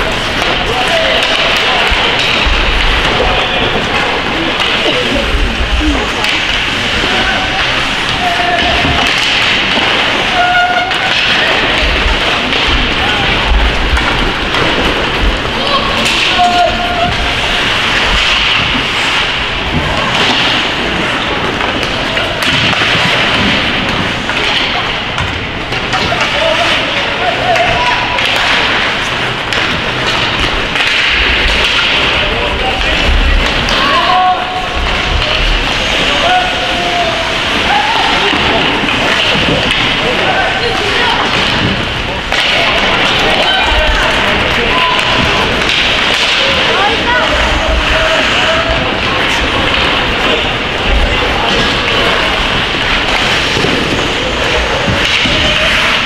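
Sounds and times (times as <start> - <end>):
players shouting: 0.0 - 25.0, 25.7 - 56.0
spectators' voices: 0.0 - 56.0.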